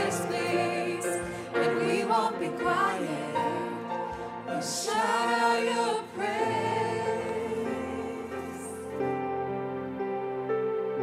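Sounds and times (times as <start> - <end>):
people singing in harmony: 0.0 - 9.4.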